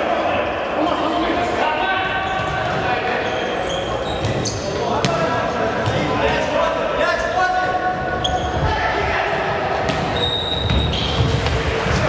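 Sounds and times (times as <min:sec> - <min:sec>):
steady din in echoing hall: 0:00.0 - 0:12.0.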